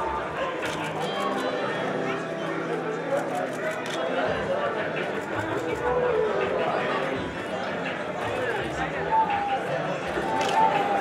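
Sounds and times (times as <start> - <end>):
chatter of voices: 0.0 - 11.0
faint music: 0.0 - 11.0.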